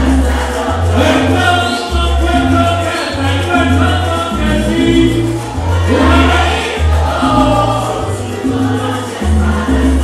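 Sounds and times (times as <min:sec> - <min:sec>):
deep bass line: 0:00.0 - 0:10.0
salsa band playing: 0:00.0 - 0:10.0
voices singing together: 0:00.0 - 0:10.0.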